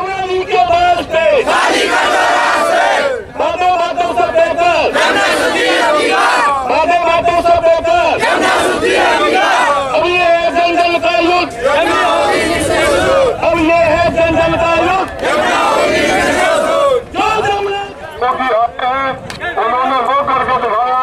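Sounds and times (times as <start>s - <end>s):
crowd of children chanting: 1.4s - 3.2s, 4.9s - 6.5s, 8.2s - 9.9s, 11.7s - 13.3s, 15.2s - 17.0s.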